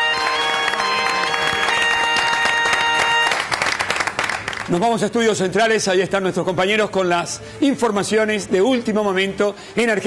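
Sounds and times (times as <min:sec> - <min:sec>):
television station jingle: 0:00.0 - 0:03.8
applause: 0:00.0 - 0:05.0.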